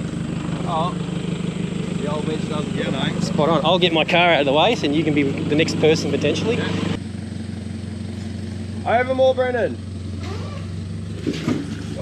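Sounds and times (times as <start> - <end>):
engine running at low revs: 0.0 - 12.0.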